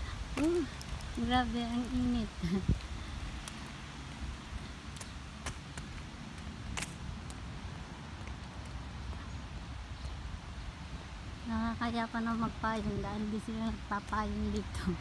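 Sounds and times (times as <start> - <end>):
low rumble with hiss: 0.0 - 15.0.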